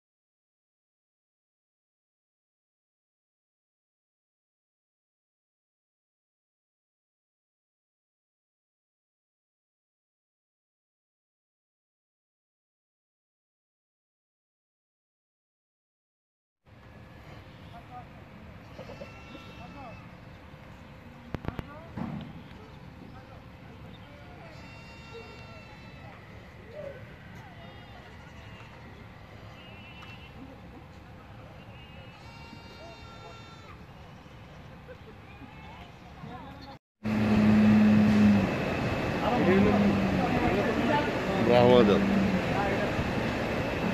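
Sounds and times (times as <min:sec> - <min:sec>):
goats bleating: 0:18.6 - 0:20.2, 0:24.4 - 0:26.6, 0:27.3 - 0:30.4, 0:31.8 - 0:36.0
ventilation fans rushing: 0:37.1 - 0:43.9.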